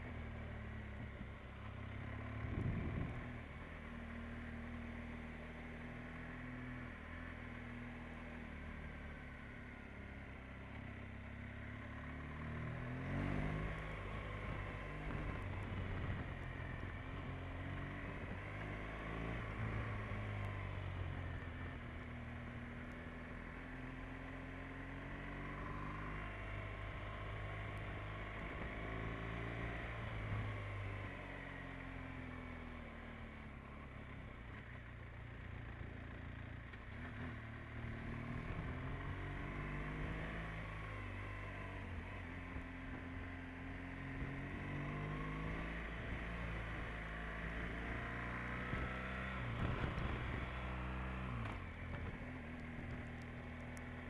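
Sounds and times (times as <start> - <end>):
motorcycle engine running: 0.0 - 54.0.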